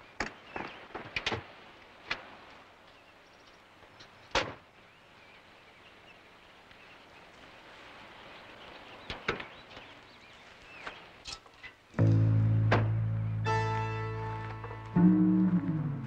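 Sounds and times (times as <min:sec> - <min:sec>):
loud held music chord: 0:12.0 - 0:16.0.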